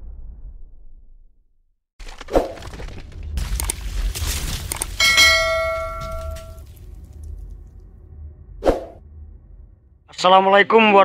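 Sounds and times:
bell chime ringing: 5.0s - 6.6s.

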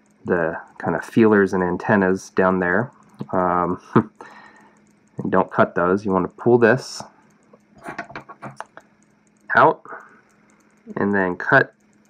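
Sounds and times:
faint steady hum: 0.0s - 12.0s
light clicks and ticks: 0.0s - 12.0s.

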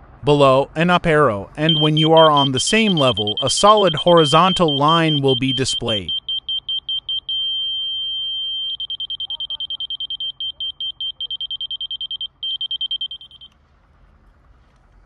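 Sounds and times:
laser detector beeping: 1.6s - 13.5s.

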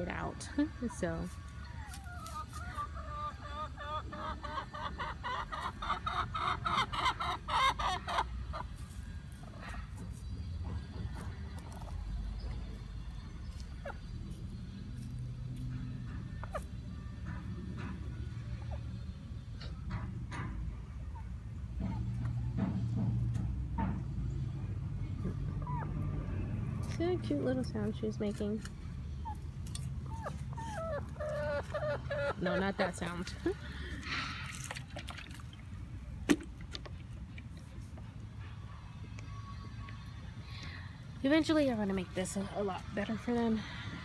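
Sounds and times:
hen clucking: 0.1s - 9.5s, 16.2s - 19.0s, 29.0s - 33.9s.

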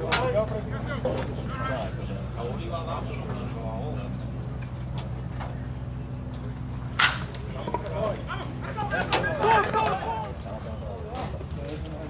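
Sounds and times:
players calling out: 6.6s - 11.6s
bat cracking against ball: 6.9s - 7.9s.

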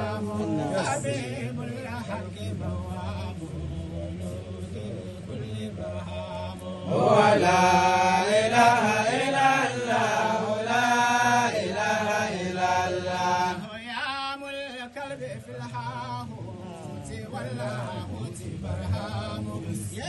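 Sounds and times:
man chanting: 0.0s - 20.0s.

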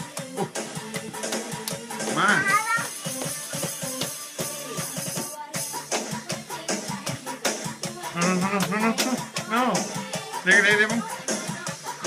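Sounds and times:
music with a steady beat: 0.0s - 12.0s
child squealing: 2.3s - 2.9s.

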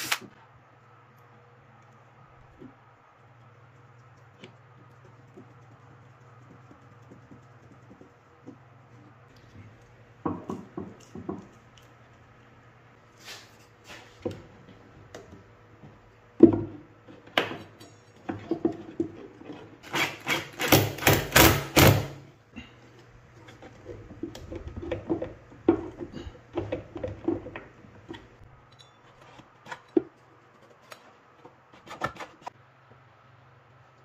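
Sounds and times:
plywood parts knocking and rubbing: 3.6s - 12.3s, 13.5s - 21.9s, 23.0s - 32.6s
screwdriver working in wooden box: 18.5s - 21.9s.

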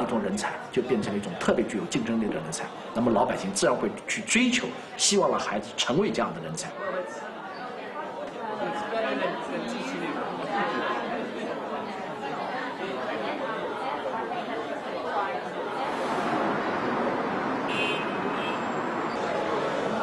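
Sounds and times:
crowd murmur: 6.6s - 20.0s.

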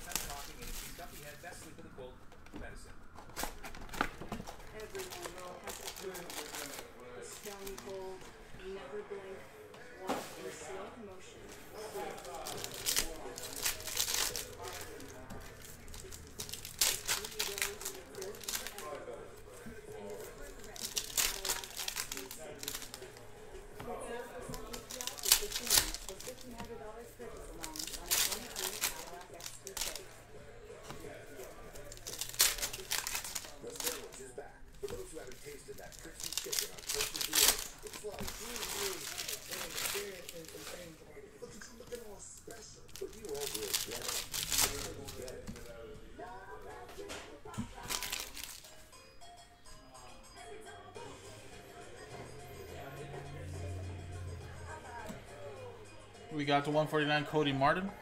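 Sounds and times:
foil packs crinkling and tearing: 0.0s - 1.7s, 3.3s - 8.2s, 11.8s - 19.1s, 19.9s - 23.2s, 24.3s - 30.2s, 31.0s - 45.7s, 47.7s - 48.7s.

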